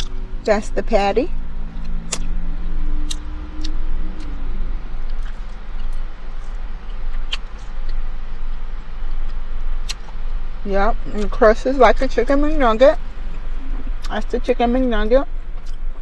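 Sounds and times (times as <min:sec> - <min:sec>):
car idling rumble: 0:00.0 - 0:16.0
low steady tone: 0:00.0 - 0:16.0
chewing and handling food: 0:05.0 - 0:10.4.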